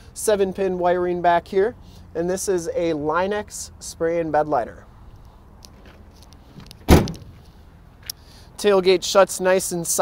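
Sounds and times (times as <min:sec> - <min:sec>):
tailgate slamming shut: 0:06.8 - 0:07.4.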